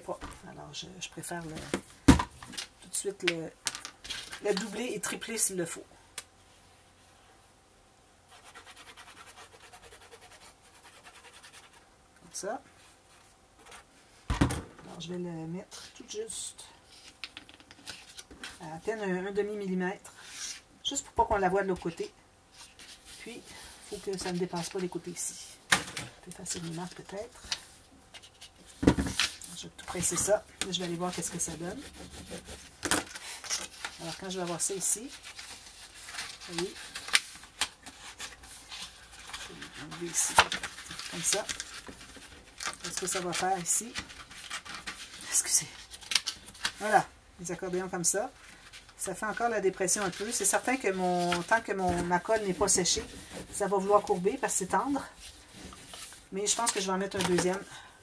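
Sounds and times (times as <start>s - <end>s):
nozzle scratching on paper: 8.3s - 11.8s, 30.7s - 37.2s
paper rustling: 26.4s - 47.0s, 48.4s - 54.6s, 55.2s - 57.6s.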